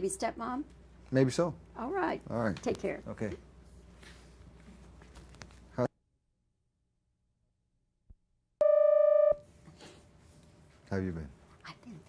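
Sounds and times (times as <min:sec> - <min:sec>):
faint room hiss: 0:00.0 - 0:05.9.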